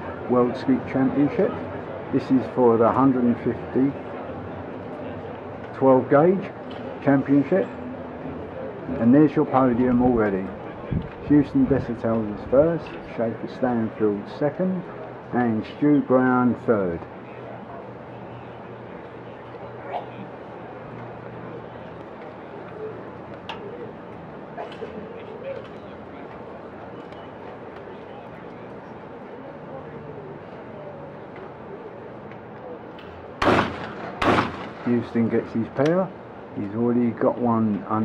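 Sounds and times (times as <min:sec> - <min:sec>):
shotgun shots: 0:33.4 - 0:34.9.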